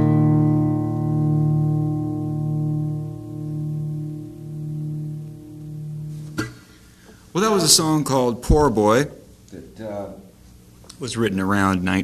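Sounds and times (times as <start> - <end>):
acoustic guitar chord ringing: 0.0 - 7.0.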